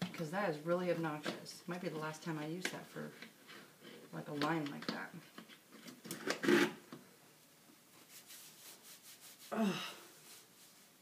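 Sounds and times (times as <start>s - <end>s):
person speaking: 4.1s - 5.2s
paper towel rubbing soap: 8.0s - 9.6s.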